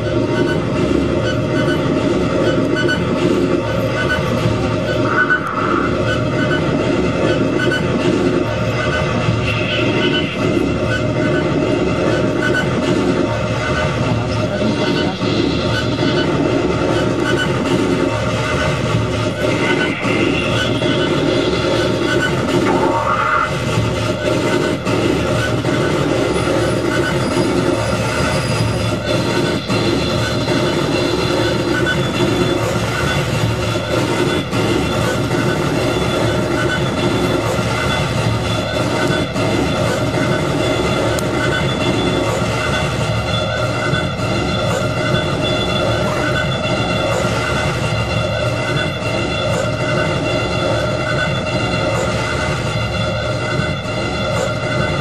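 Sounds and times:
noisy synthesizer drone: 0.0 - 55.0
steady high synth tones: 1.2 - 55.0.

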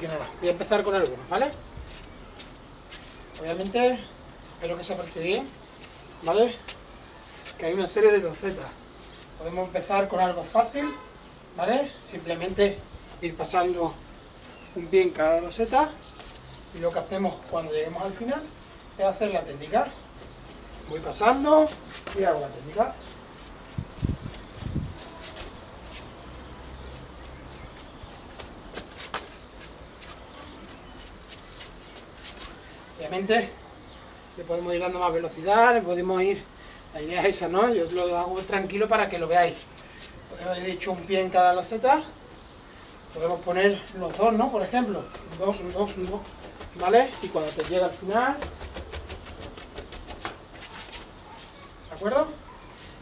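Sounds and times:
footsteps on tiled floor: 0.8 - 3.8, 21.6 - 22.4, 23.0 - 32.6, 43.7 - 51.8.

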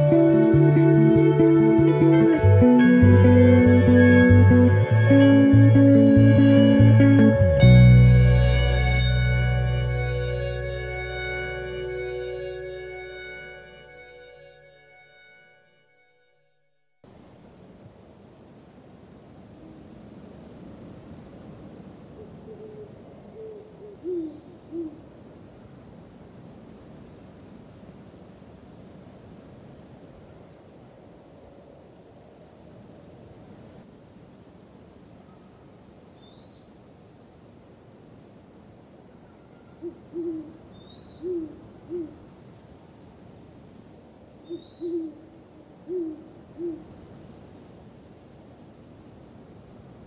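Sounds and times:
steady hiss: 17.0 - 50.0
low hooting calls: 22.1 - 25.1, 39.1 - 42.2, 44.4 - 46.9.

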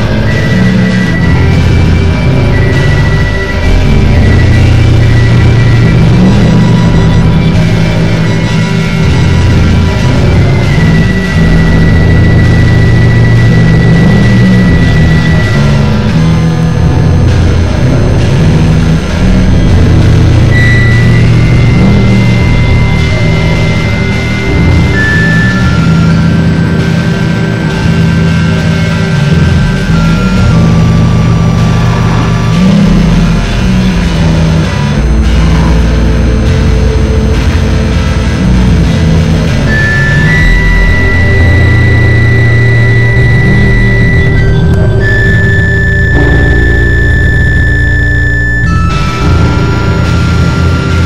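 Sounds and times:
loud noise music drone: 0.0 - 51.0.

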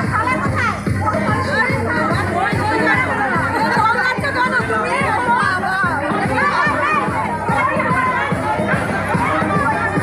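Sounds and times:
crowd shouting and chattering: 0.0 - 10.0
loud music with quick drum beat: 0.0 - 10.0.

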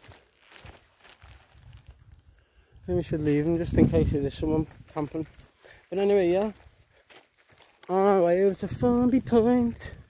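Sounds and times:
footsteps on grassy sandy ground: 0.0 - 10.0.

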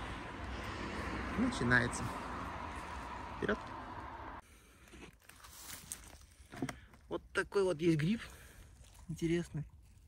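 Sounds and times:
footsteps crunching on dry leaves: 5.2 - 6.5.

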